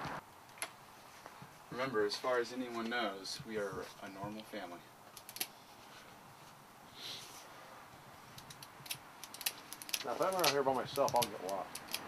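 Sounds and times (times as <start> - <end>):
light irregular clicks: 8.4 - 12.0.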